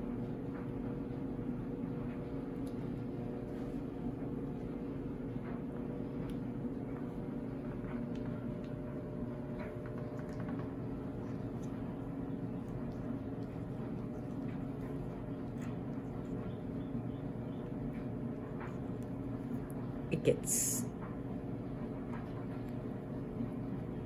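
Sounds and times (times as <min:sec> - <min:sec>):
low room hum: 0:00.0 - 0:24.0.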